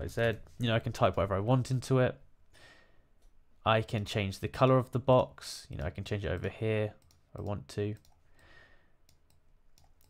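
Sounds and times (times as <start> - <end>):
computer mouse clicks: 5.8 - 8.2, 9.0 - 10.0.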